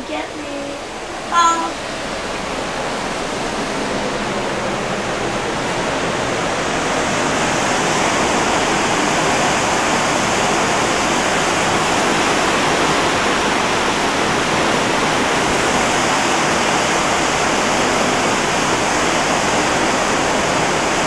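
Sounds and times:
ship wake rushing: 0:00.0 - 0:21.0.

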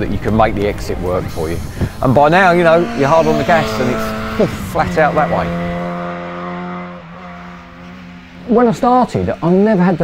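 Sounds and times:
race car engine at high revs: 0:01.6 - 0:10.0.

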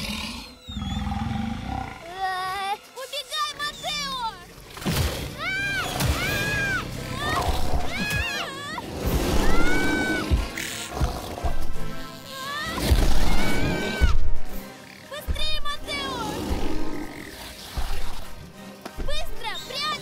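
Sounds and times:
dinosaur squealing cries: 0:00.0 - 0:02.0
film score music: 0:00.0 - 0:20.0.

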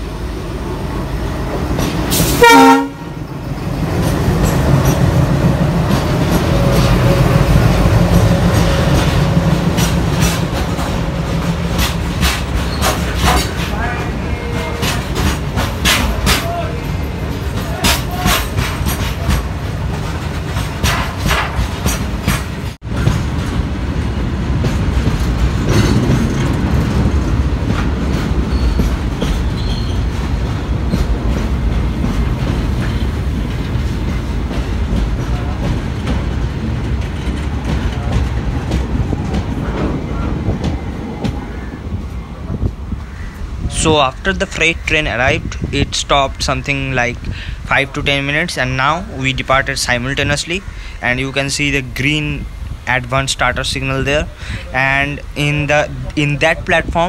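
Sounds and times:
diesel locomotive engine drone: 0:00.0 - 0:57.0
wheels clicking over rail joints: 0:03.2 - 0:41.4.

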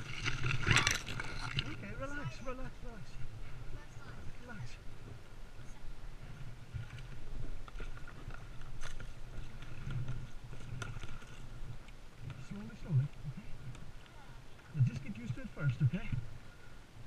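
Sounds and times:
water lapping against hull: 0:00.0 - 0:02.2, 0:02.9 - 0:16.9
paddle dipping in water: 0:06.2 - 0:15.3.

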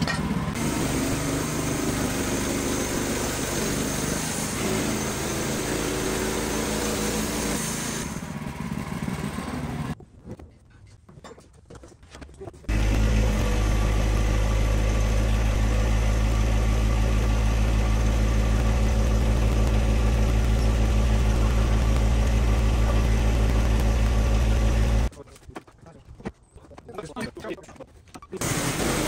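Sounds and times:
diesel tractor engine idling: 0:12.7 - 0:25.1.

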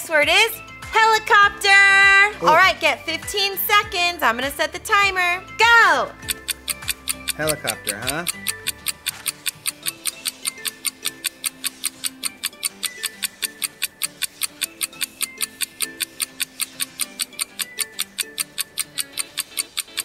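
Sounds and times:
simple looping melody: 0:00.3 - 0:20.0
clock-like ticks: 0:03.3 - 0:20.0.

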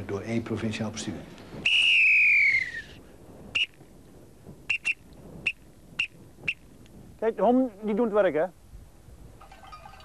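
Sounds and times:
shepherd's whistle: 0:01.6 - 0:03.0, 0:03.6 - 0:03.8, 0:04.7 - 0:06.6.

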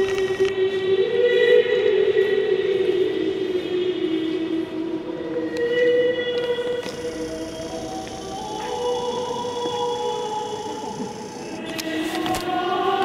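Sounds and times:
slow sacred music echoing: 0:00.0 - 0:13.0.

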